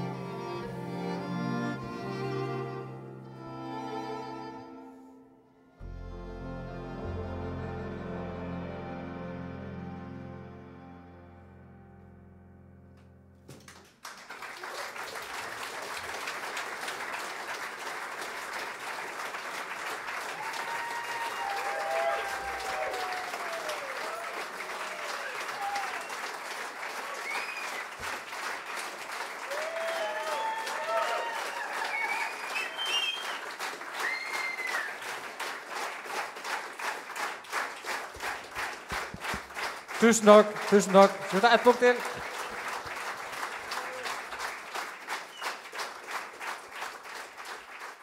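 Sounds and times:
audience applause: 0:00.0 - 0:03.0, 0:13.5 - 0:48.0
piano notes: 0:00.0 - 0:13.6
voices calling out in approval: 0:40.0 - 0:42.2.

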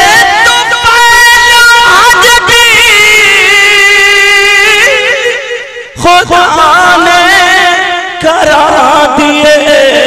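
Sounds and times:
man singing through loudspeakers: 0:00.0 - 0:10.0.

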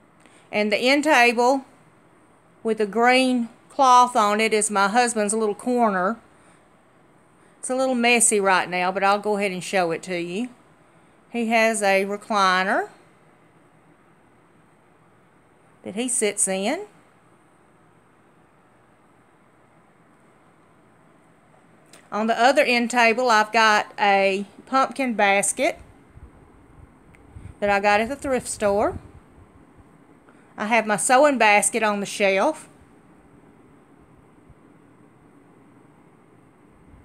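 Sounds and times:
faint steady hiss: 0:00.0 - 0:37.0.

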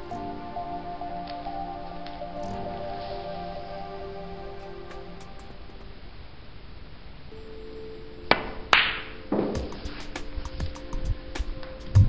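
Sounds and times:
faint background music: 0:00.0 - 0:06.2, 0:07.3 - 0:12.0.

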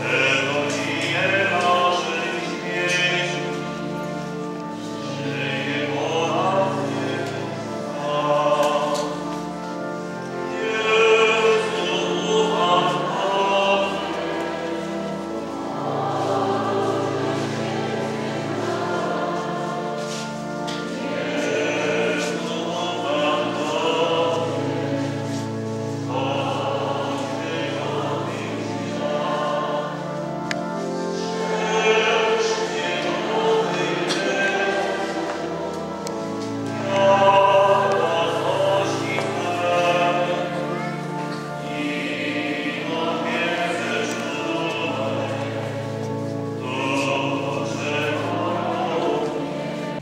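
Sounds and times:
choir singing: 0:00.0 - 0:50.0
low sustained accompaniment: 0:00.0 - 0:50.0.

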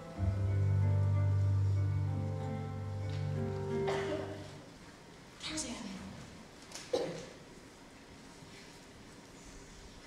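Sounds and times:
musical backing track chord: 0:00.0 - 0:04.8.

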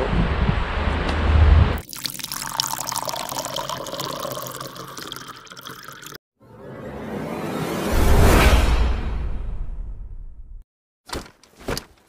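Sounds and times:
rising whoosh: 0:06.4 - 0:10.4.

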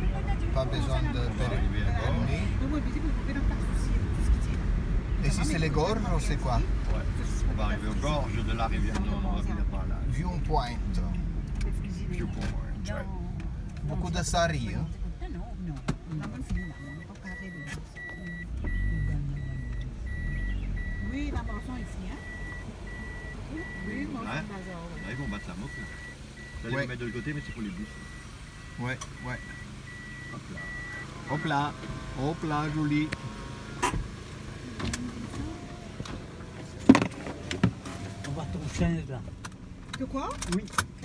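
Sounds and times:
car engine rumble: 0:00.0 - 0:41.0
car warning beeper: 0:16.2 - 0:32.9.

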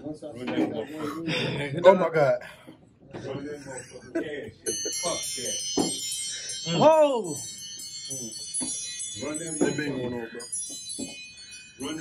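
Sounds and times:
high-pitched ringing: 0:03.4 - 0:12.0.

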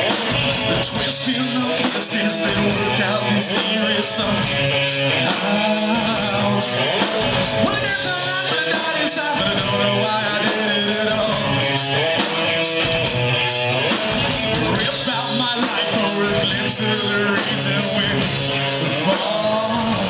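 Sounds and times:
bass: 0:00.0 - 0:20.0
drums with cymbal hits: 0:00.0 - 0:20.0
electric guitars: 0:00.0 - 0:20.0
person singing into microphone: 0:00.6 - 0:07.0, 0:07.6 - 0:11.6, 0:14.5 - 0:20.0.

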